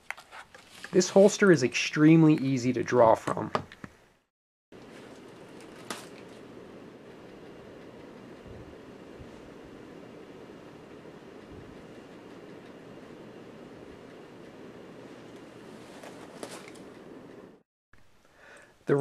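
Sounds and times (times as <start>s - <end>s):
low room hum: 4.8s - 19.0s.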